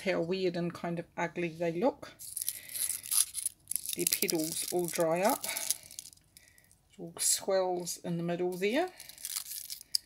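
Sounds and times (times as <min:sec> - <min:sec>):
dry petals rustling and crackling: 0:02.3 - 0:06.7, 0:08.5 - 0:10.0.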